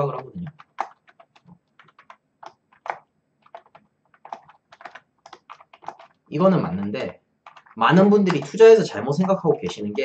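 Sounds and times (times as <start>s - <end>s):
typing on computer keyboard: 0.0s - 10.0s.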